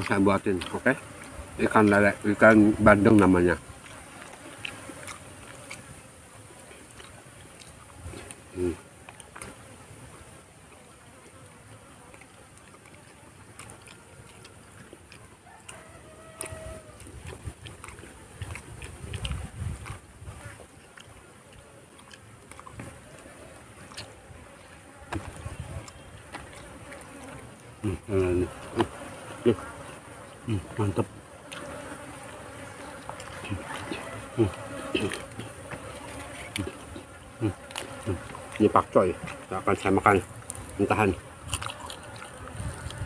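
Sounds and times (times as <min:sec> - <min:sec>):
eating sounds: 0:00.0 - 0:43.0
flies buzzing: 0:00.0 - 0:43.0.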